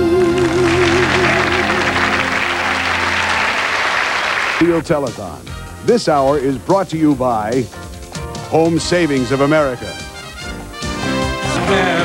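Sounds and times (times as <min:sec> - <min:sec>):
audience applauding: 0:00.2 - 0:04.6.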